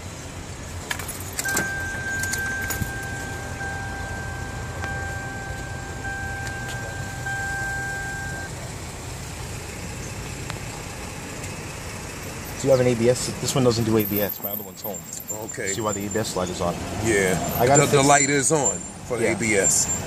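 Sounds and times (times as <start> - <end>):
high-pitched electronic warning tone: 1.4 - 8.5.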